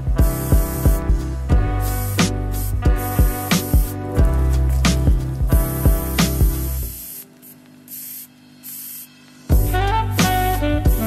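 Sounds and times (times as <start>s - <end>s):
background music: 0.0s - 7.0s, 9.5s - 11.0s
spray-paint can hissing: 0.1s - 9.6s.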